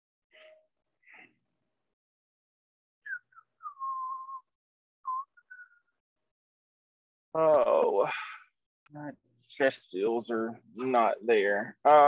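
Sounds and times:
person whistling: 3.0 - 6.0.

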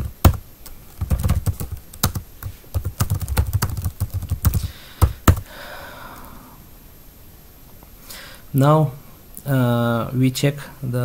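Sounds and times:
computer keyboard typing: 0.0 - 5.5.

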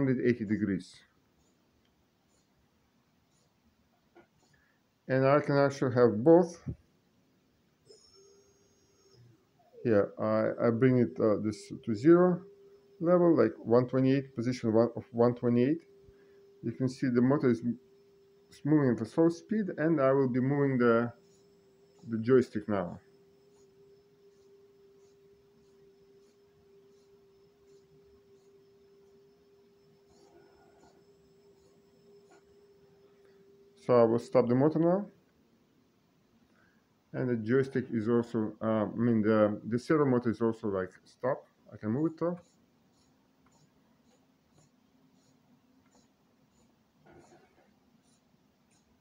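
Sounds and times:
electric motor whining: 7.9 - 35.0.

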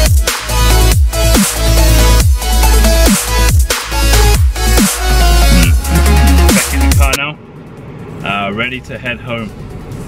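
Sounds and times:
electronic dance music: 0.0 - 7.2
man speaking: 5.4 - 7.4.

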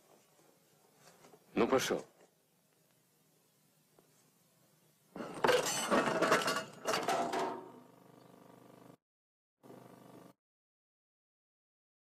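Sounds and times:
metallic clattering and clinking: 5.2 - 7.6.

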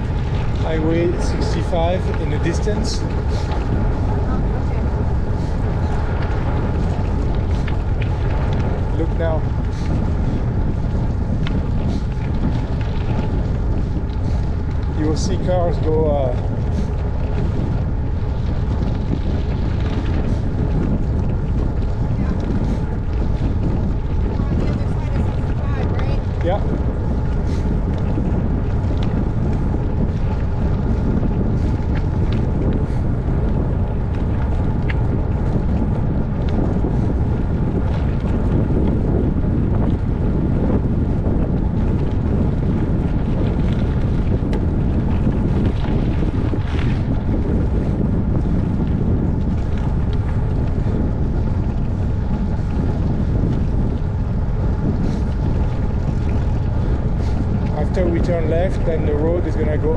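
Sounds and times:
bicycle tyres rolling on road: 0.0 - 59.9
wind rumble on microphone: 0.0 - 59.9.

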